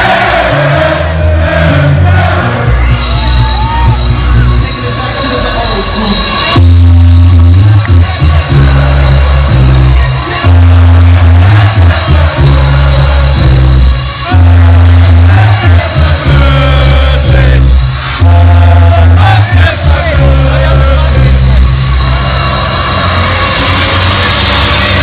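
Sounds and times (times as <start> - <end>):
electronic dance music: 0.0 - 25.0
heavy bass line: 0.0 - 25.0.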